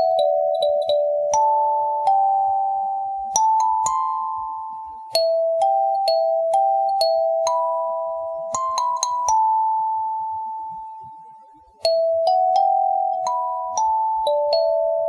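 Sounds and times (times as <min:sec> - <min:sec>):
kalimba melody: 0:00.0 - 0:10.5, 0:11.8 - 0:15.0.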